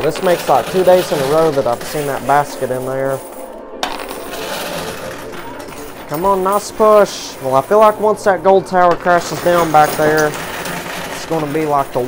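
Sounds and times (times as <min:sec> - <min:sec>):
coins clinking and scraping: 0:00.0 - 0:12.0.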